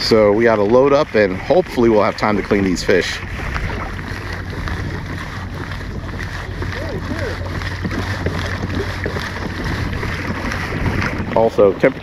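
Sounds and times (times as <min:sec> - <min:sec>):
kayak moving through water: 0:00.0 - 0:12.0
wind on microphone: 0:00.0 - 0:12.0.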